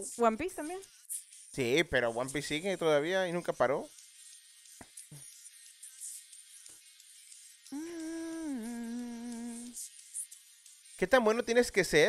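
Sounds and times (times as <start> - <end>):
faint background music: 0.0 - 12.0
person singing a long note: 7.8 - 9.8.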